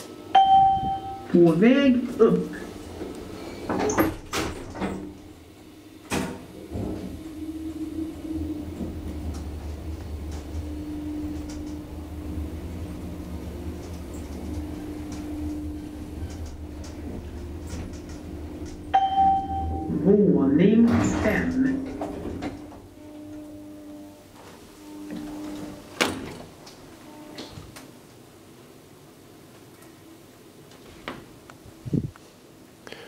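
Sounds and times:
elevator doors sliding shut: 0:00.0 - 0:28.4
elevator machine humming: 0:00.0 - 0:32.2.

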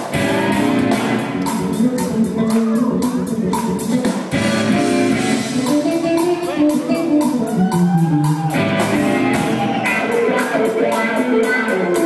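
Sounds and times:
electric guitar lead: 0:00.0 - 0:03.6, 0:04.3 - 0:12.0
bass guitar: 0:00.0 - 0:12.0
drum kit with cymbals: 0:00.0 - 0:12.0.

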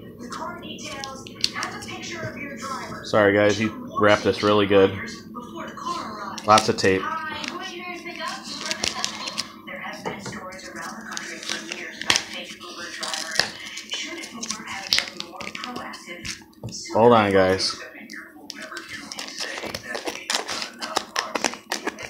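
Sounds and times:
packaging crackling: 0:06.4 - 0:09.6, 0:10.6 - 0:16.4, 0:18.5 - 0:22.0
packing tape tearing: 0:07.4 - 0:09.5, 0:10.8 - 0:15.9, 0:18.5 - 0:22.0.

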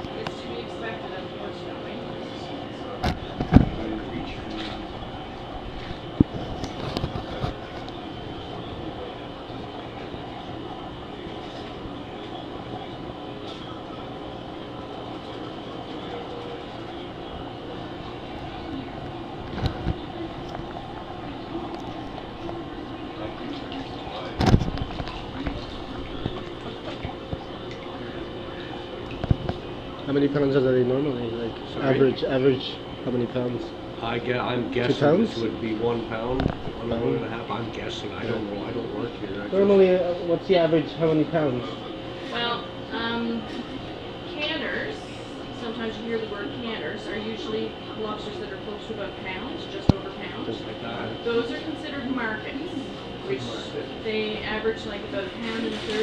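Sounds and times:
running water: 0:00.0 - 0:56.0
tank circulation hum: 0:00.0 - 0:56.0.

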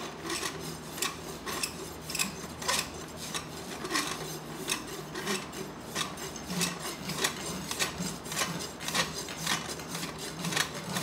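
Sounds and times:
hoof rasp filing hoof: 0:00.0 - 0:11.0.

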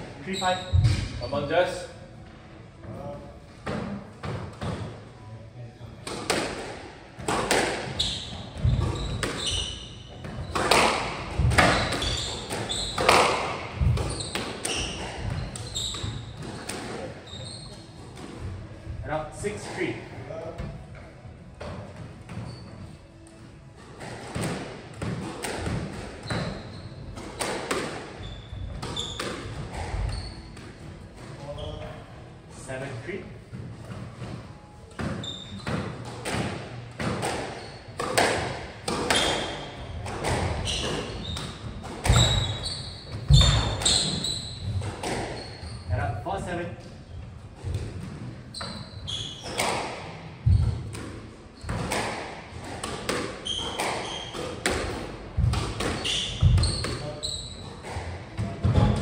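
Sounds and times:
shoes squeaking on court: 0:00.2 - 0:01.5, 0:07.2 - 0:18.5, 0:21.8 - 0:23.8, 0:25.0 - 0:32.1, 0:33.4 - 0:46.1, 0:47.0 - 0:59.0.

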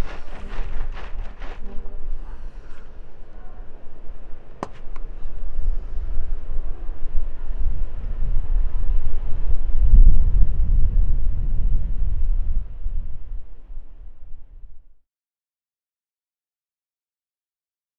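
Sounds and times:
low rumble: 0:00.0 - 0:03.4.

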